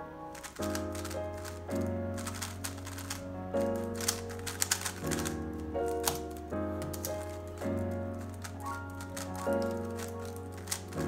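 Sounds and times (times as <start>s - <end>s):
background music with sustained chords: 0.0s - 11.0s
puzzle cube clicking as turned: 0.4s - 11.0s.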